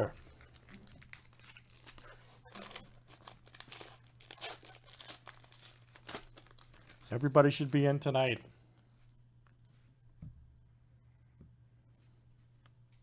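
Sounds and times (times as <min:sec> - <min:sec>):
plastic wrapper tearing and crinkling: 0:00.1 - 0:07.8.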